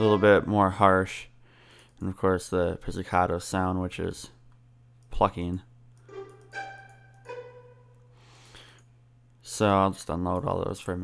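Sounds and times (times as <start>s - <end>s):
low steady hum: 0.0s - 11.0s
violin pizzicato note: 6.1s - 8.0s.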